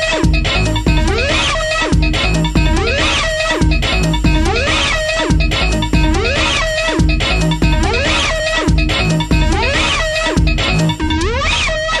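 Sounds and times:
techno track with swooping synth: 0.0 - 12.0.

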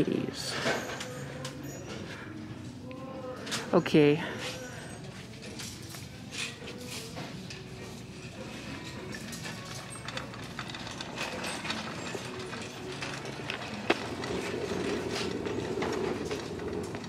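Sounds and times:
shopping cart rattling: 0.0 - 17.0
shopping cart rolling: 0.0 - 17.0.

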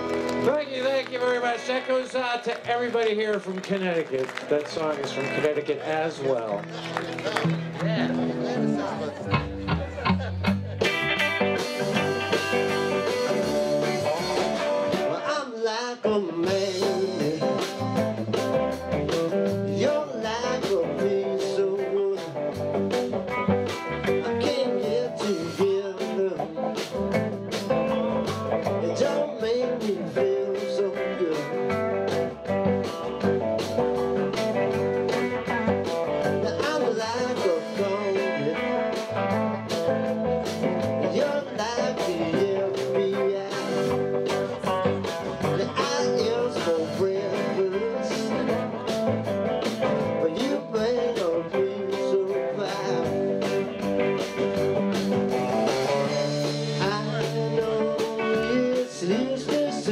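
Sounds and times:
drum kit beat: 0.0 - 59.9
electric guitars: 0.0 - 59.9.

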